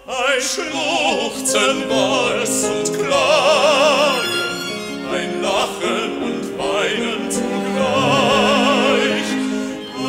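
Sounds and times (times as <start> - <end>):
folk ensemble accompaniment: 1.7 - 10.0
violin phrase with vibrato: 7.6 - 9.2.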